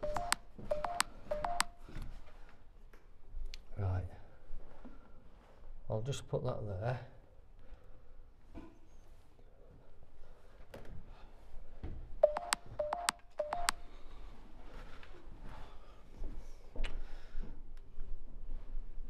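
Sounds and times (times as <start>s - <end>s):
electronic gadget beeping: 0.0s - 1.7s, 12.2s - 13.7s.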